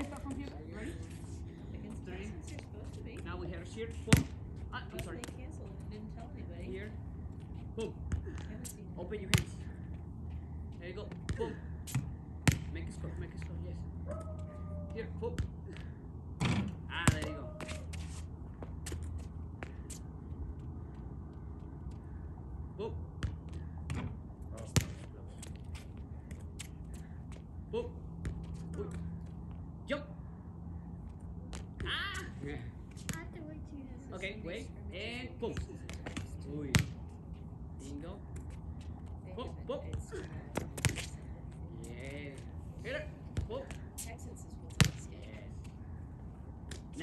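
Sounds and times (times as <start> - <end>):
ball kicked and bouncing on concrete: 0.0 - 1.2, 1.8 - 22.1, 23.1 - 29.6, 31.1 - 33.6, 35.4 - 37.5, 38.2 - 42.5, 43.2 - 45.8.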